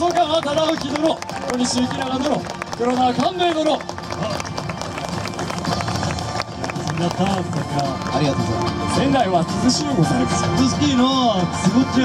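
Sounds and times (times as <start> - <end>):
quick footsteps on paved stage: 0.0 - 9.1
scattered clapping: 0.0 - 9.3.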